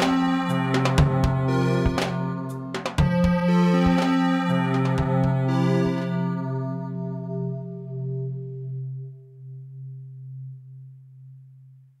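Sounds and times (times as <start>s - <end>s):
low synthesizer note: 0.0s - 11.9s.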